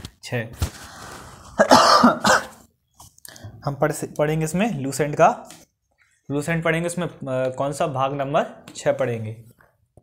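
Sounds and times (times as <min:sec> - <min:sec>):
man coughing and clearing throat: 0:01.6 - 0:02.7.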